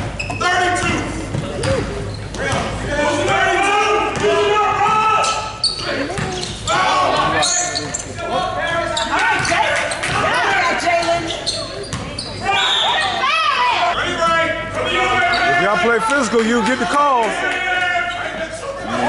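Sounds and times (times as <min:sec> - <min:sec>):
chatter and calls of people: 0:00.0 - 0:19.0
basketball bouncing on hardwood floor: 0:06.1 - 0:06.4.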